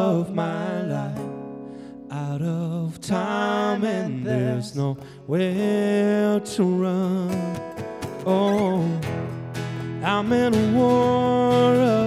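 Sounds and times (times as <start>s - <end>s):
strummed acoustic guitars: 0.0s - 12.0s.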